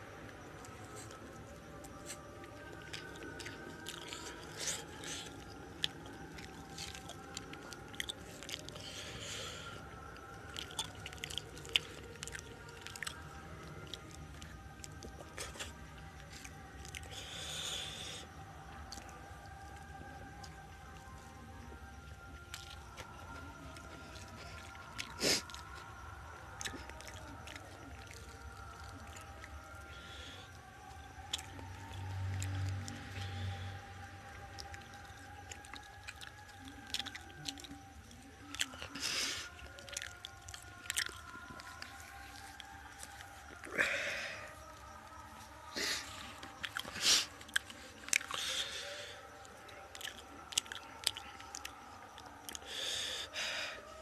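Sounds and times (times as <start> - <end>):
chewing and biting food: 0.0 - 52.9.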